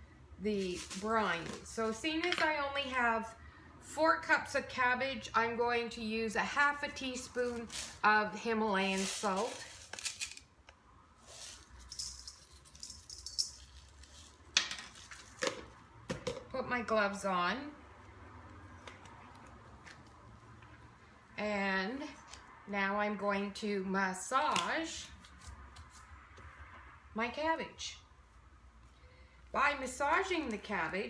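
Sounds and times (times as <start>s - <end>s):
faint rustling and handling: 0.4s - 2.5s, 8.7s - 10.4s, 11.2s - 15.4s.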